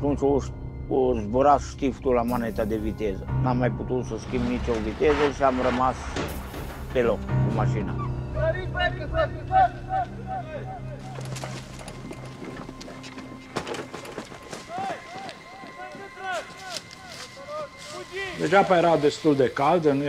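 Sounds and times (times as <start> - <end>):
men shouting: 9.1 - 11.2, 14.6 - 18.4
running footsteps: 11.0 - 18.5.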